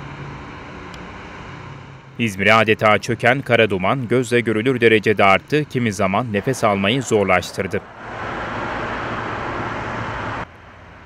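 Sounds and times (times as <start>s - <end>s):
highway traffic noise: 0.0s - 11.0s.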